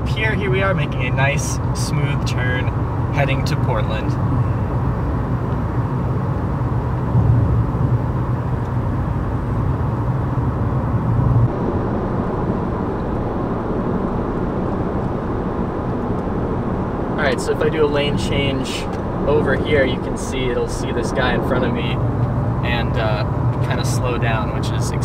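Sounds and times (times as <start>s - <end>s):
road and tyre rumble: 0.0s - 25.0s.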